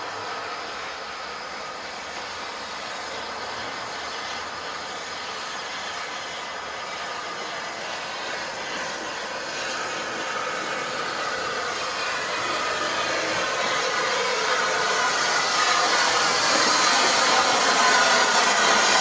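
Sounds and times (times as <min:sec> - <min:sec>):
steam locomotive hissing: 0:00.0 - 0:19.0.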